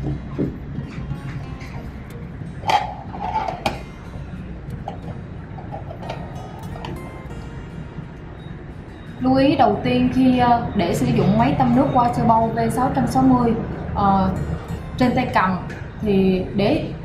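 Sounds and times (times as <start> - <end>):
background music with low bass: 0.0 - 17.0.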